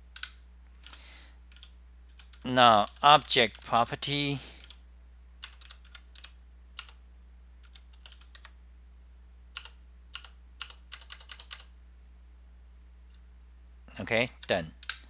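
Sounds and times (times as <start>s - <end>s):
low steady hum: 0.0s - 15.0s
computer keyboard typing: 0.1s - 3.7s, 5.4s - 7.0s, 7.6s - 8.6s, 9.6s - 11.7s.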